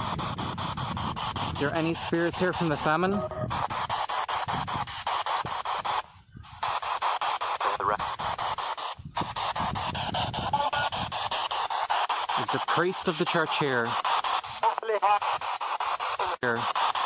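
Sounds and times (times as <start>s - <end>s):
radio scanner static bursts: 0.0s - 17.0s.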